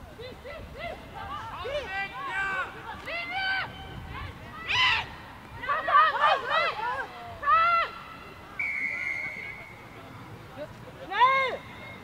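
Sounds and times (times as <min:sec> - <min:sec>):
referee's whistle blast: 0:08.6 - 0:09.8.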